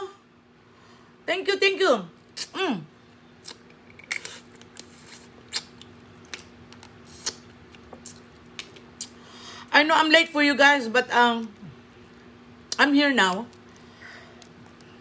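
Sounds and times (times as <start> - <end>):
mouth chewing sounds: 3.4 - 9.2.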